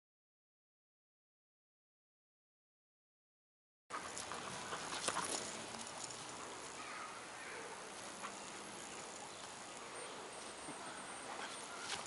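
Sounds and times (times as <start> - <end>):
rustling on grass: 3.9 - 12.0
dogs scuffling over rope toy: 11.3 - 12.0.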